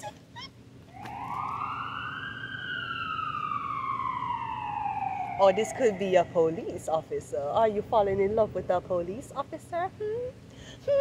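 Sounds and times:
emergency siren wailing: 0.9s - 7.4s.

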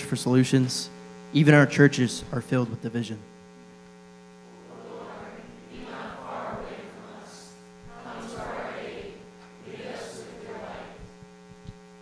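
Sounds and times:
congregation reading together: 0.0s - 3.3s, 4.5s - 11.7s
electrical mains hum: 0.0s - 12.0s.

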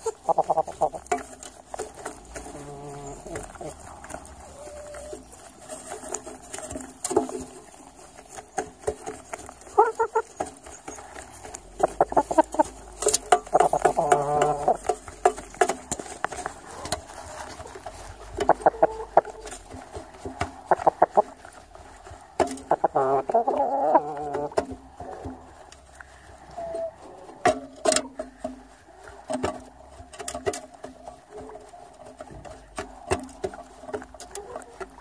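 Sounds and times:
chickens clucking: 0.0s - 35.0s.

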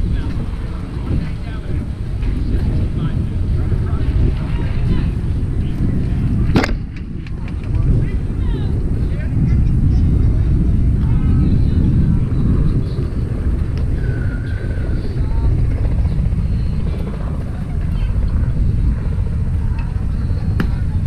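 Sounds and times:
faint voices: 0.0s - 21.0s
wind buffeting microphone: 0.0s - 21.0s.

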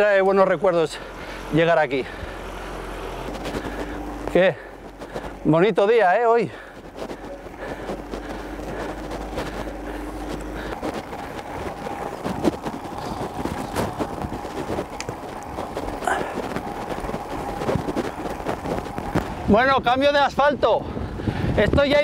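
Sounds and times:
low hum: 0.0s - 19.9s
even rushing noise: 0.0s - 22.0s.

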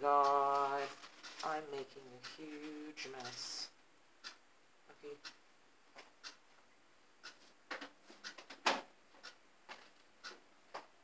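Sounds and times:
paper and foil crinkling: 0.4s - 1.9s.

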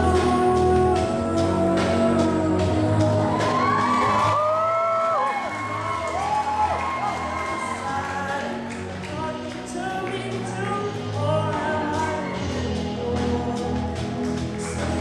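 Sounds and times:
man singing into a microphone: 0.0s - 4.1s, 7.4s - 15.0s
amplified backing music: 0.0s - 15.0s.

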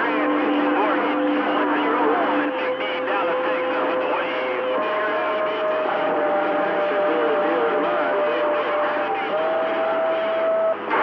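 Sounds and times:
garbled radio voices: 0.0s - 11.0s
radio static: 0.0s - 11.0s.

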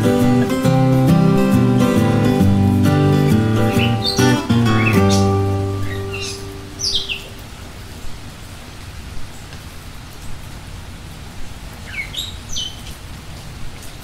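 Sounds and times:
bird chirps: 3.1s - 7.4s, 11.9s - 12.8s.

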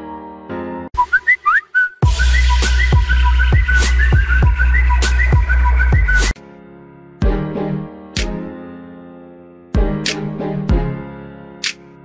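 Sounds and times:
whistled melody: 0.9s - 6.4s.

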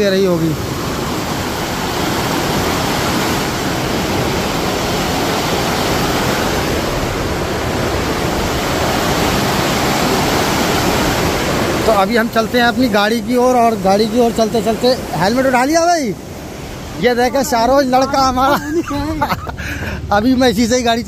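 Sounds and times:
water rushing through sluice gates: 0.0s - 21.0s.

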